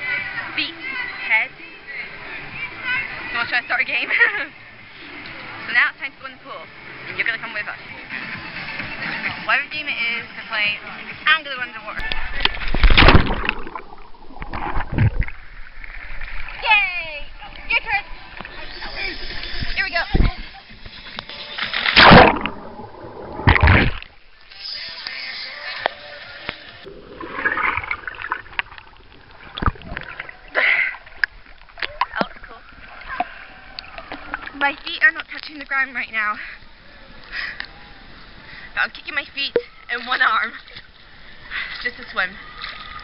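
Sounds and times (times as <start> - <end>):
pool water splashing and sloshing: 0.0 - 43.0
loud splashes: 12.2 - 16.6, 21.6 - 24.2, 26.8 - 33.5.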